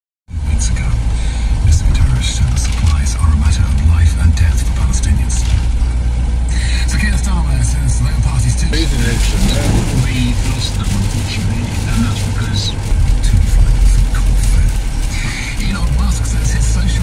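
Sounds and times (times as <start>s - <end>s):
tyres on wet road: 0.3s - 17.0s
van engine drone: 0.3s - 17.0s.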